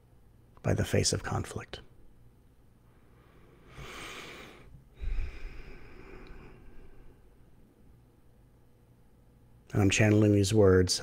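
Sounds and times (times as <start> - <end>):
man breathing close to microphone: 2.9 - 7.5.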